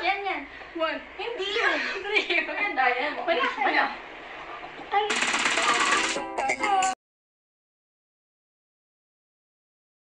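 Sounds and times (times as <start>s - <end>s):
loud rapid rattling: 5.1s - 6.2s.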